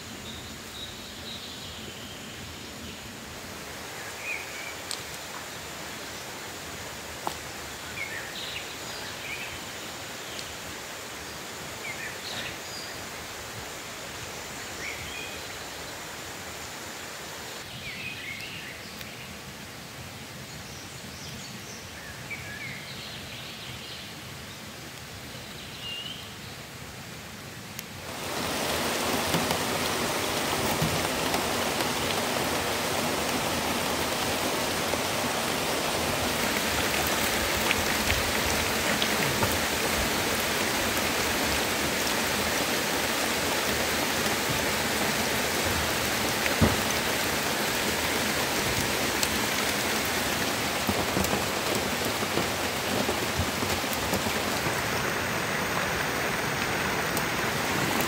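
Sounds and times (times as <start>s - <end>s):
steady rain falling: 0.0s - 58.0s.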